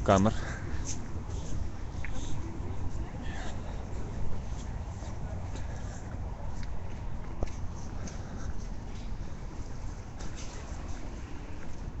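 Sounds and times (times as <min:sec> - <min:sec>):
faint indistinct voices: 0:00.0 - 0:12.0
low rumbling background noise: 0:00.0 - 0:12.0.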